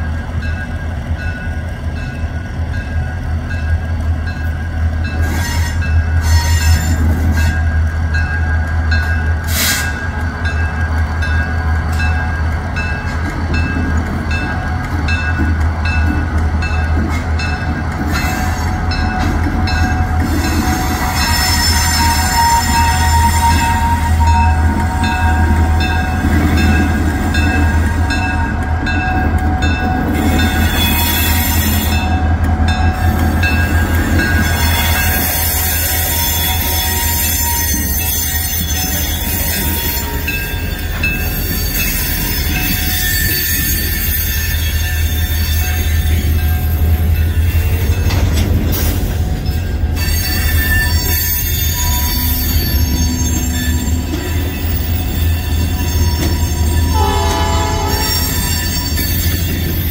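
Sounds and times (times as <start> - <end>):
diesel locomotive engine rumble: 0.0 - 59.9.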